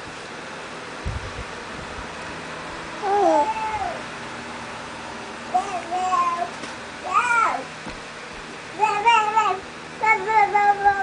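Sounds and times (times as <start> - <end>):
baby cooing: 3.0 - 4.0.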